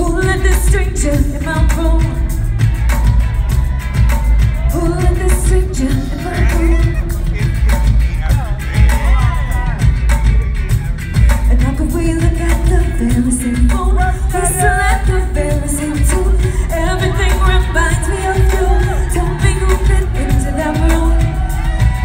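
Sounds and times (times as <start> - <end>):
women singing: 0.0 - 2.6, 4.6 - 7.3, 11.5 - 22.0
bass-heavy beat: 0.0 - 22.0.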